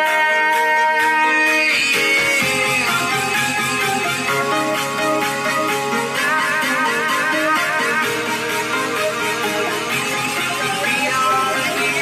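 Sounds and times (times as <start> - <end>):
bass line: 0.0 - 12.0
held instrumental notes: 0.0 - 12.0.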